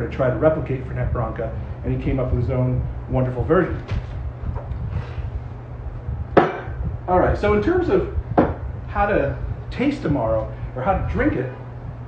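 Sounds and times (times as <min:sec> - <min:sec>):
low room hum: 0:00.0 - 0:12.0
glass bottle knocking on shelf: 0:06.4 - 0:06.8.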